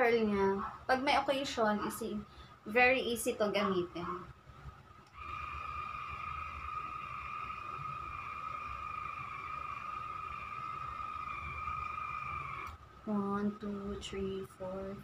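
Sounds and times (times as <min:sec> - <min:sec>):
hair curler steady tone: 0:05.1 - 0:12.8.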